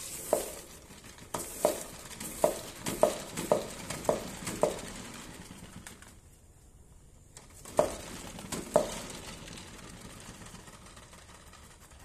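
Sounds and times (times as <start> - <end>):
whirr of spinning mop head: 0.0 - 6.4, 7.4 - 12.0.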